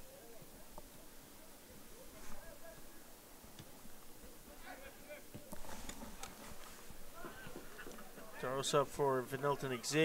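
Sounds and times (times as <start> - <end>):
open-air field ambience: 0.0 - 10.0
distant players shouting: 4.4 - 10.0.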